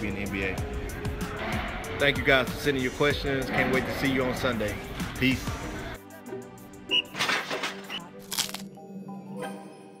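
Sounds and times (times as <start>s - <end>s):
background music with held tones: 0.0s - 10.0s
potato chip crunch: 8.2s - 8.7s.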